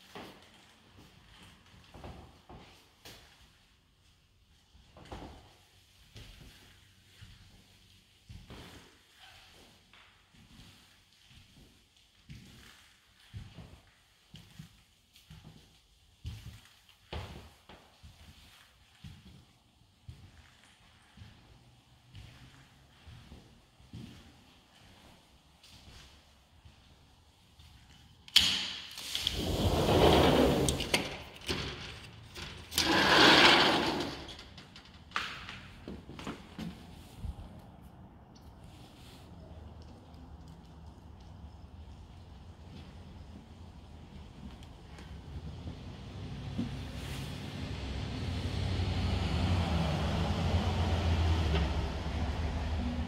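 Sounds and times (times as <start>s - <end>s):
door rolling in track: 29.0s - 35.1s, 48.0s - 53.0s
passing vehicle rumble: 37.3s - 53.0s.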